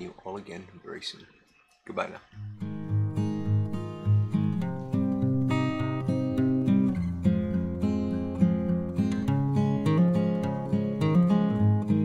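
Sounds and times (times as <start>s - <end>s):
acoustic guitar music: 2.4s - 12.0s.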